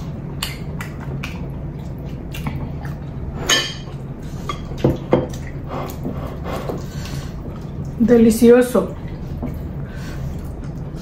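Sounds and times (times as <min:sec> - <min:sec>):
steady low hum: 0:00.0 - 0:11.0
wet mouth clicks and smacks: 0:00.4 - 0:03.0.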